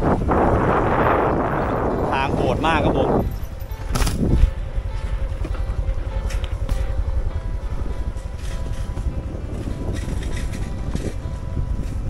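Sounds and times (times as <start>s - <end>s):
background music: 0.0s - 12.0s
wind buffeting microphone: 0.0s - 12.0s
motorcycle engine: 3.0s - 12.0s.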